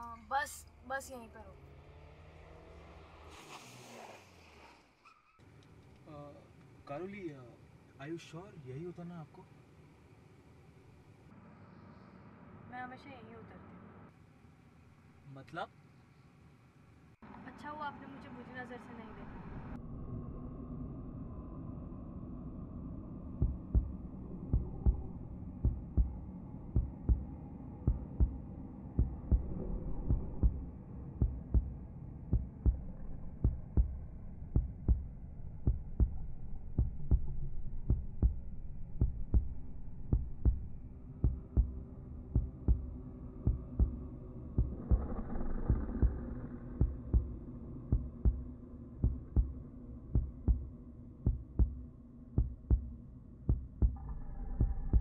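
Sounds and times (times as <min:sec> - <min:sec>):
low steady drone: 0:17.3 - 0:55.0
heartbeat thumps: 0:23.3 - 0:55.0.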